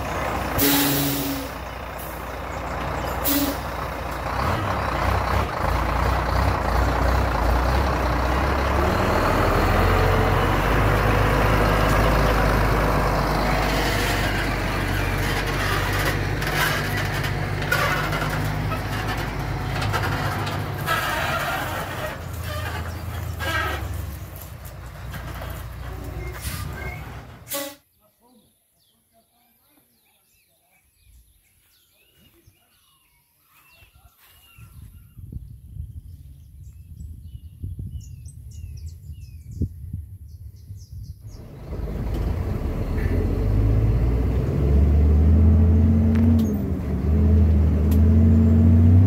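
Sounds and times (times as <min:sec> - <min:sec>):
truck driving past: 0:00.0 - 0:27.6, 0:41.2 - 0:49.0.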